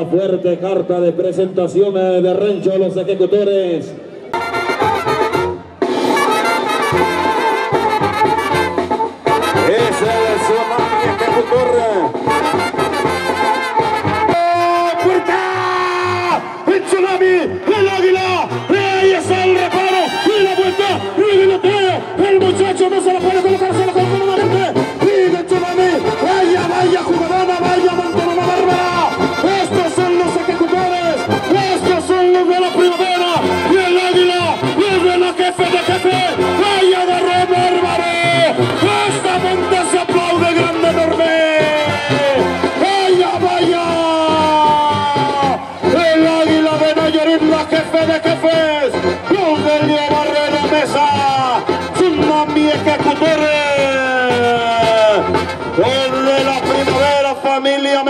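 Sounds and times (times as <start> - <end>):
brass band music: 3.8 - 58.0.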